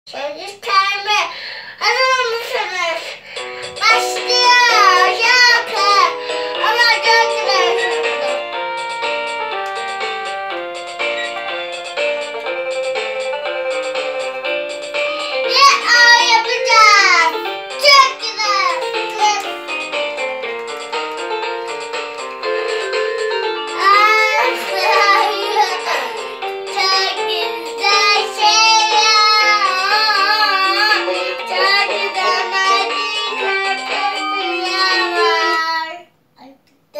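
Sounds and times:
electronic keyboard held notes: 0:03.4 - 0:35.6
child singing into a microphone: 0:03.8 - 0:08.3, 0:15.4 - 0:19.5, 0:23.8 - 0:36.5.

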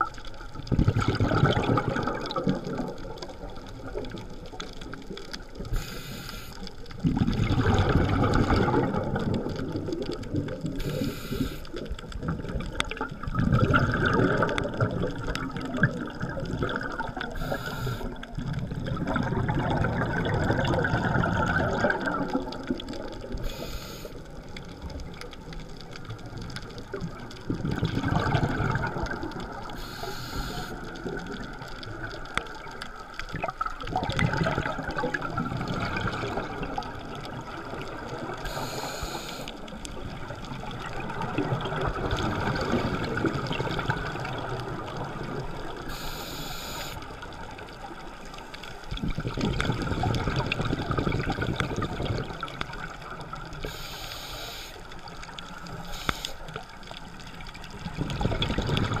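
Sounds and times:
exhaled bubbles burbling underwater: 0:00.0 - 0:59.0
regulator inhalation hiss: 0:05.7 - 0:06.7, 0:10.8 - 0:11.7, 0:17.4 - 0:18.2, 0:23.4 - 0:24.2, 0:29.8 - 0:30.8, 0:38.4 - 0:39.6, 0:45.9 - 0:47.0, 0:53.6 - 0:54.8, 0:55.8 - 0:56.5.

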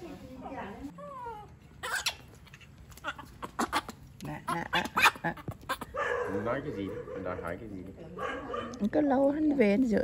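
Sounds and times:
baby monkey crying: 0:01.2 - 0:06.0.

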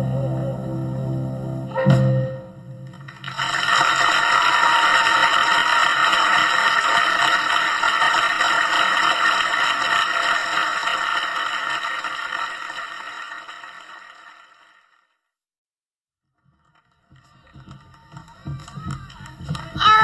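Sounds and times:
audience applause: 0:02.8 - 0:15.1, 0:16.4 - 0:20.0.

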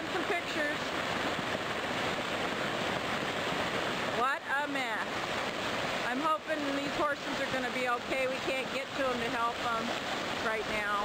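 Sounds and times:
water rushing: 0:00.0 - 0:11.0.

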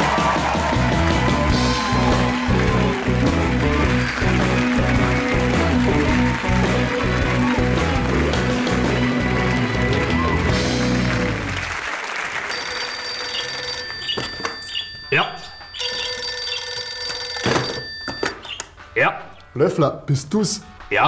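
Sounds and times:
band music: 0:00.0 - 0:11.7
applause: 0:00.0 - 0:14.0
telephone ringing: 0:12.5 - 0:18.5.

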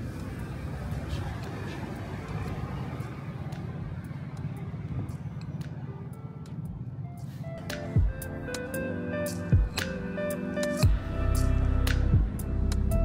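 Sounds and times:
background music: 0:00.0 - 0:13.0
low rumble of traffic: 0:00.0 - 0:13.0.

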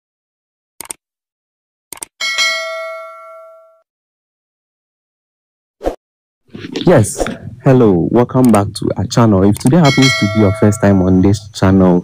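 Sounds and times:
notification bell ding: 0:02.2 - 0:03.8, 0:09.8 - 0:11.1
mouse clicks: 0:09.4 - 0:09.9.

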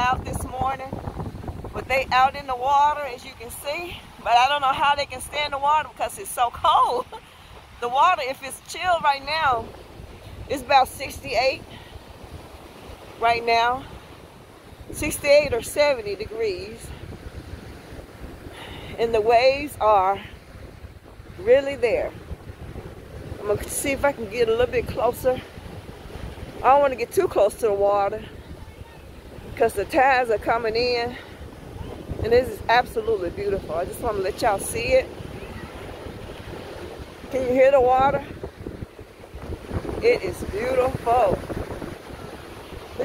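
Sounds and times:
ocean surf: 0:00.0 - 0:43.0
wind buffeting microphone: 0:00.0 - 0:43.0.

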